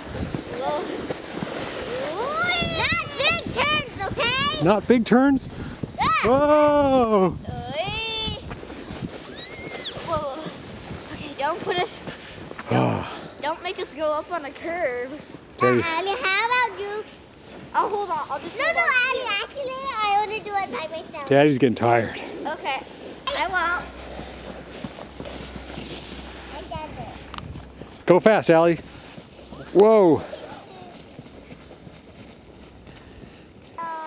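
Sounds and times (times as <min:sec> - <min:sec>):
saucer scraping over snow: 0:00.0 - 0:04.9, 0:21.8 - 0:32.4
footsteps on packed snow: 0:00.0 - 0:05.9, 0:07.8 - 0:34.0
sled pulled over snow: 0:00.0 - 0:34.0
children calling out: 0:02.1 - 0:04.6, 0:09.3 - 0:10.5
child squealing: 0:09.3 - 0:10.0.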